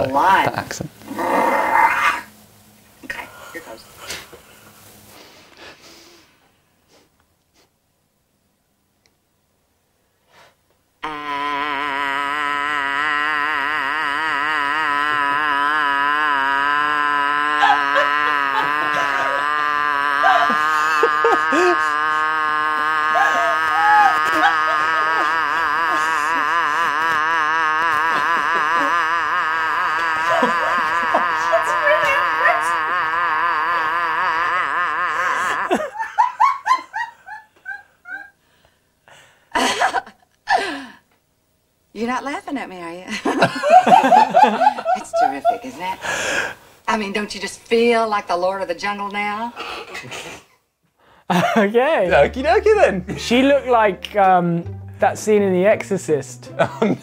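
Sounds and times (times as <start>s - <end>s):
short breathy bursts: 3.9s - 7.8s
woman yelling ahh: 11.2s - 35.7s
men laughing: 11.5s - 38.4s, 39.6s - 40.7s, 43.2s - 46.4s, 51.3s - 54.1s, 56.4s - 57.0s
laughter: 23.2s - 26.4s, 30.2s - 31.5s, 35.3s - 38.4s, 39.5s - 40.6s, 43.1s - 45.9s, 51.3s - 51.7s, 56.6s - 57.0s.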